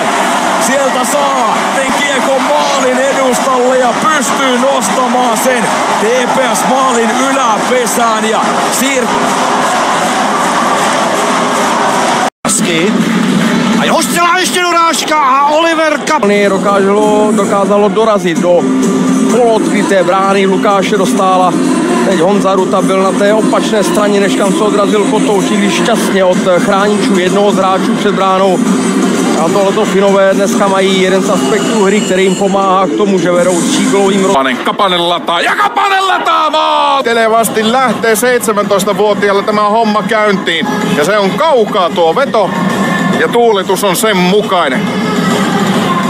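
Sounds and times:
crowd roaring: 0.0s - 46.0s
commentator speaking: 0.5s - 9.2s, 12.4s - 13.1s, 13.7s - 46.0s.

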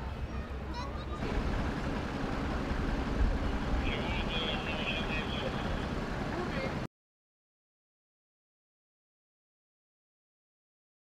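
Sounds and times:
distant voices: 0.0s - 6.9s
low rumble of vehicle engines: 0.0s - 6.9s.

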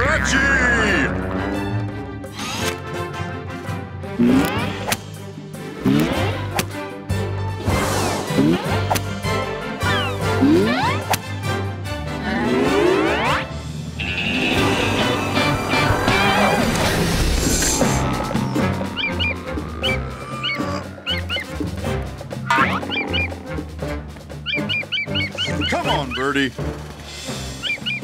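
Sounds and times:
cartoon background music: 0.0s - 28.0s.

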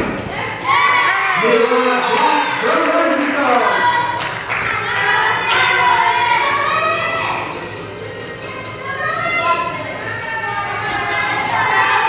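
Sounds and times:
chatter of children and adults: 2.3s - 12.0s.

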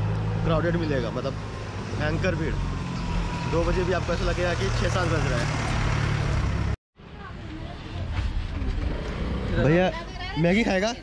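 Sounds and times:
vehicle engine rumbling: 0.0s - 10.9s
street sounds: 0.0s - 11.0s.

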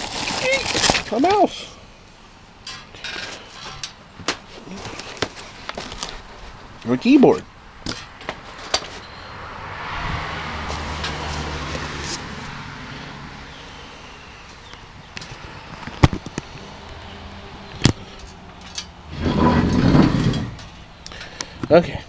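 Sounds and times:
car passing by: 8.9s - 14.2s.

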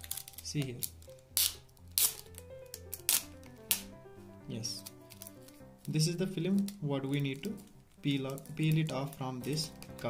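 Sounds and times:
background music with held notes: 0.0s - 10.0s
plastic film crackling: 0.0s - 10.0s.

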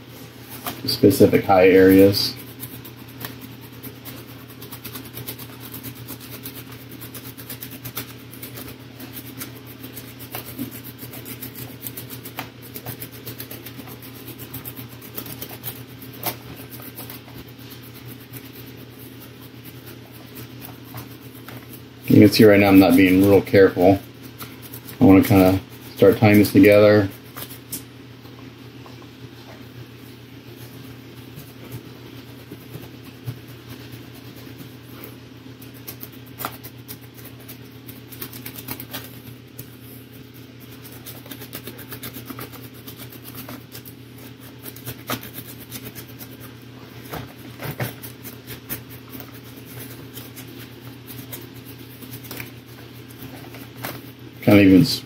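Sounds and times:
low electrical hum: 0.0s - 55.0s
brush scrubbing on rock: 0.3s - 27.7s, 29.3s - 54.9s.

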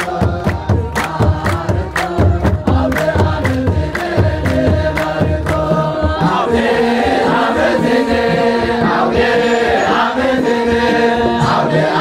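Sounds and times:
hands clapping: 0.0s - 6.3s
drum beating: 0.0s - 12.0s
group singing a hymn: 0.0s - 12.0s.

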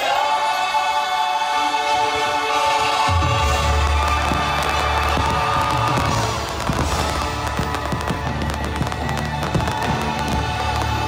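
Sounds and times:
loud music: 0.0s - 11.0s
fireworks bursting and crackling: 2.6s - 11.0s.

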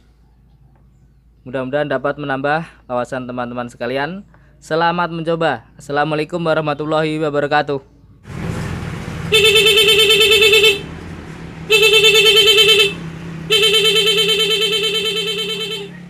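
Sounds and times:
pulsing scooter horn: 9.2s - 16.0s.

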